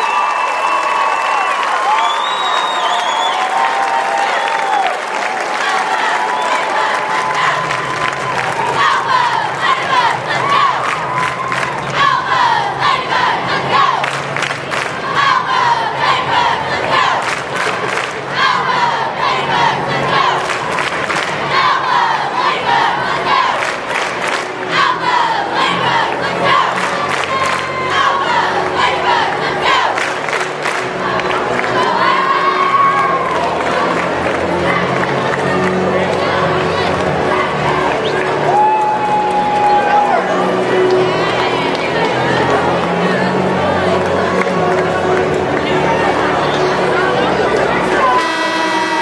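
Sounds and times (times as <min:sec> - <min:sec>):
hands clapping: 0:00.0 - 0:08.9, 0:10.8 - 0:12.0, 0:14.0 - 0:15.0, 0:16.8 - 0:18.2, 0:20.4 - 0:21.4, 0:23.6 - 0:24.6, 0:26.7 - 0:27.8, 0:29.7 - 0:31.9
crowd cheering and yelling: 0:00.0 - 0:49.0.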